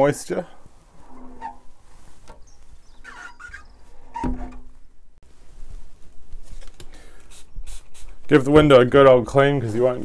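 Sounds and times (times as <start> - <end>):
squeegee squeaking on wet glass: 1.0 - 4.7.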